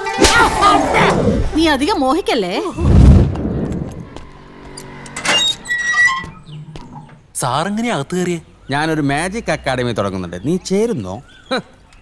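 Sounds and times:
metal gate clanking: 4.7 - 7.2.

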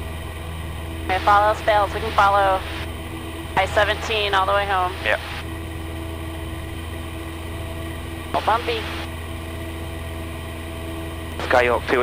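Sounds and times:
aircraft engine and propeller droning: 0.0 - 12.0.

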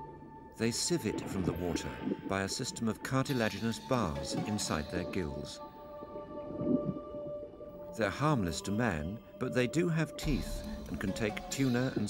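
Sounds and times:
sustained music tones: 0.6 - 12.0.

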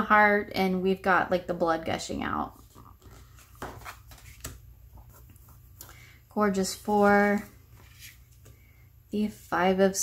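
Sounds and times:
cards handled on a table: 2.6 - 6.0, 7.2 - 8.7.

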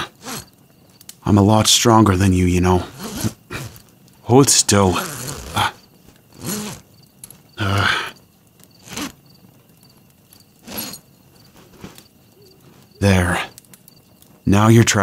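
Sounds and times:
rustling: 0.0 - 14.5
crickets chirping: 0.0 - 15.0.

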